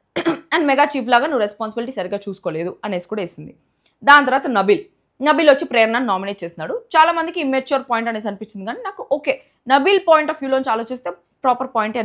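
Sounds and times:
woman speaking: 0.2s - 12.0s.

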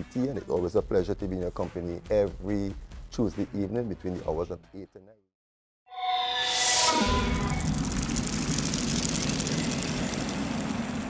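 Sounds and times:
deep rushing roar: 6.5s - 11.0s.

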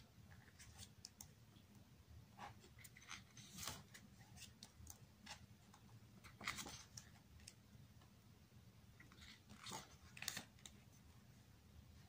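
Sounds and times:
page turning rustle: 2.7s - 5.4s, 6.2s - 7.6s, 9.0s - 10.8s.

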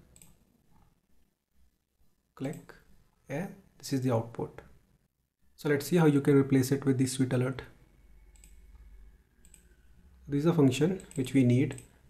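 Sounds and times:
computer mouse clicks: 0.0s - 0.9s, 8.3s - 9.8s, 10.9s - 12.0s.

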